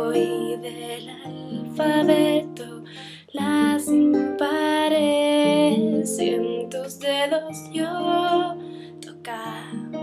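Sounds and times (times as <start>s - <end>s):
acoustic guitar: 0.0s - 10.0s
woman singing: 0.0s - 10.0s.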